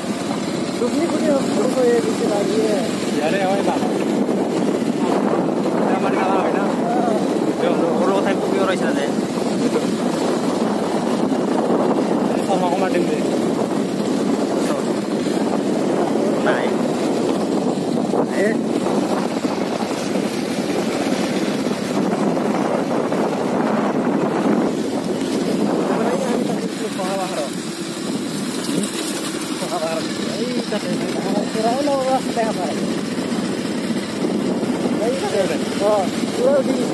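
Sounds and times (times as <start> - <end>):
motorcycle engine running: 0.0 - 36.9
road and wind noise: 0.0 - 36.9.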